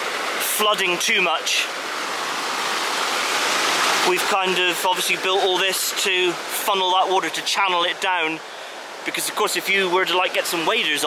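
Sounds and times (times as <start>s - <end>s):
water rushing over stone: 0.0s - 11.0s.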